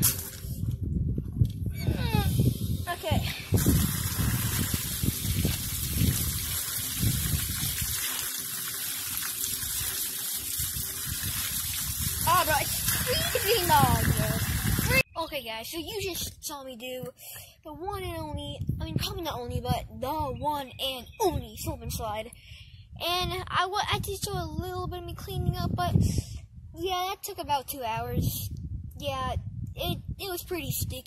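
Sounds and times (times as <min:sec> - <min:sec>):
water pouring and splashing: 0:03.2 - 0:15.0
person speaking: 0:12.2 - 0:17.1.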